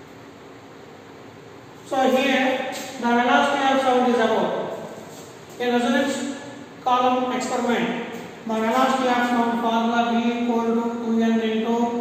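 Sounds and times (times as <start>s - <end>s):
man talking: 1.8s - 4.8s, 5.5s - 12.0s.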